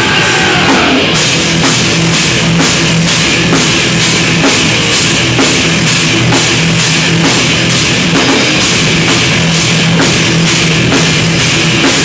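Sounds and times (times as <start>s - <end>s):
thrash metal band playing: 0.0s - 12.0s.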